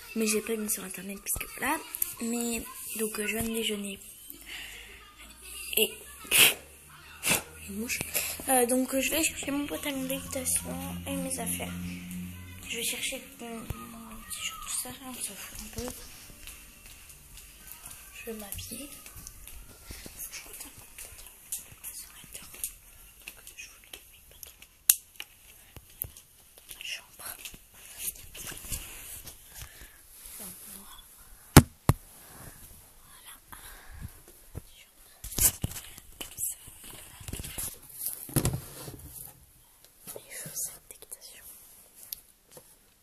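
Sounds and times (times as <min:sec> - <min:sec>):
soft whispering: 0:00.1 - 0:24.7, 0:25.4 - 0:31.5, 0:32.4 - 0:38.0, 0:39.6 - 0:42.1.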